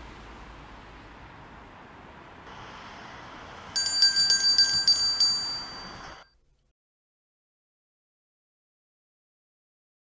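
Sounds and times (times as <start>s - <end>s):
steady background noise: 0.0s - 6.4s
small bell ringing: 3.8s - 6.4s.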